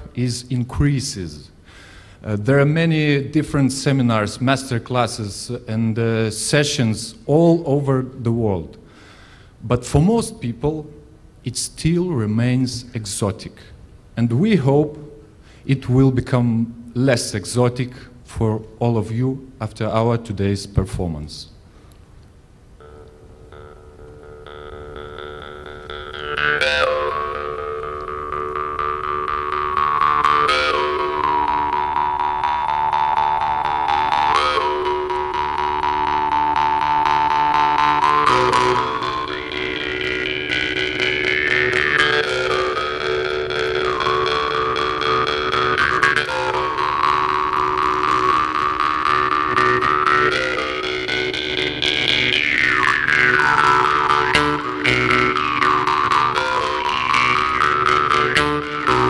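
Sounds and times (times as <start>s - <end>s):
jew's harps twanging: 22.8s - 59.0s.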